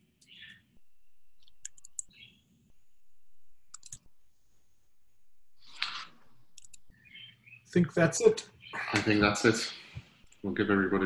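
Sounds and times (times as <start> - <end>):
sharp quiet clicks: 1.4 - 2.2, 3.7 - 4.1, 5.7 - 6.9.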